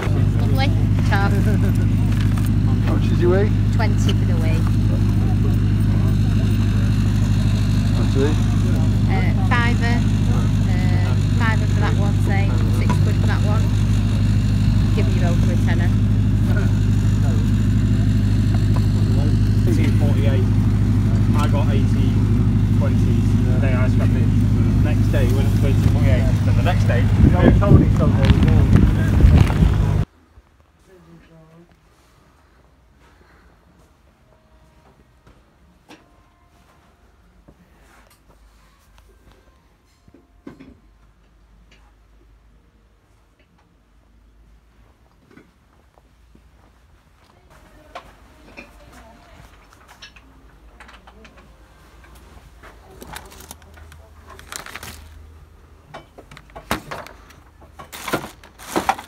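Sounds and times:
people chattering: 0:00.0 - 0:30.0
low engine drone: 0:00.0 - 0:30.1.

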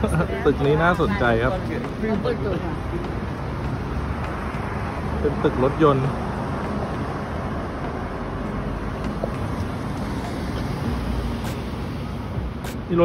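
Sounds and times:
cars rumbling on road: 0:00.0 - 0:13.0.

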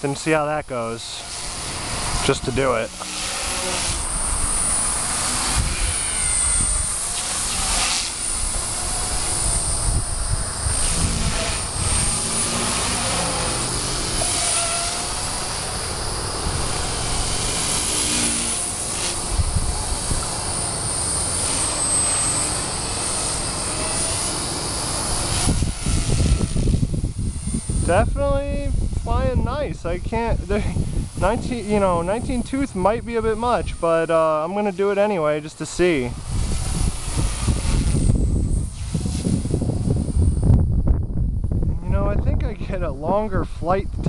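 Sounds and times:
rc helicopter motor whine: 0:00.0 - 0:42.4
rotor rushing noise: 0:00.8 - 0:40.6.

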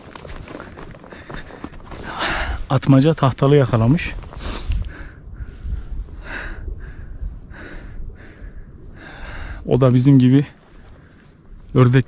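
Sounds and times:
person breathing: 0:00.4 - 0:02.7, 0:04.3 - 0:09.7, 0:10.7 - 0:11.5
low rumble on microphone: 0:03.6 - 0:12.0.

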